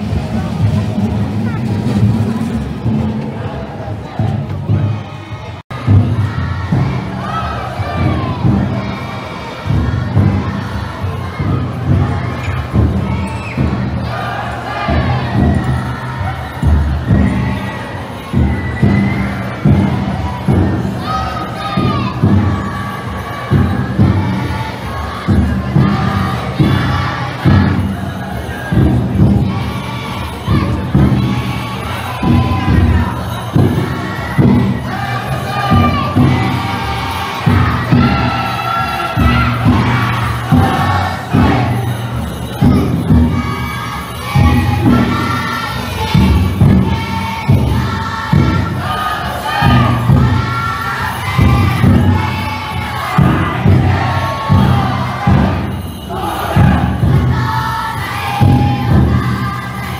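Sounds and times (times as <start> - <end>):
crowd voices: 0.0 - 59.9
people shouting a chant: 2.8 - 59.9
taiko drum beating: 5.7 - 59.9.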